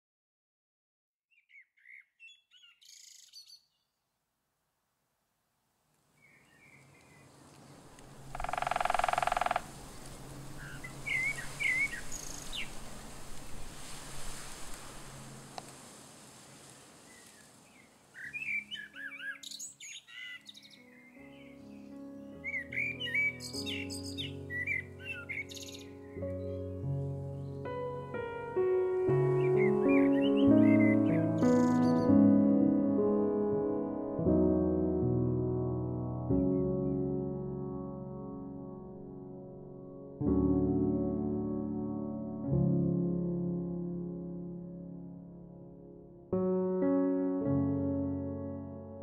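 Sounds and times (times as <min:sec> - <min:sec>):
bird chirping and trilling: 0:01.3 - 0:03.9, 0:06.2 - 0:07.3, 0:08.2 - 0:09.8, 0:10.5 - 0:12.8, 0:17.1 - 0:27.6, 0:29.3 - 0:32.1
soft music with held notes: 0:18.2 - 0:49.0.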